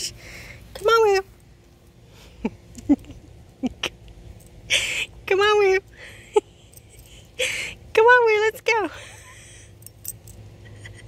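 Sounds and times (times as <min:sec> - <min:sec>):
metal tags clinking: 0:09.8 - 0:10.6.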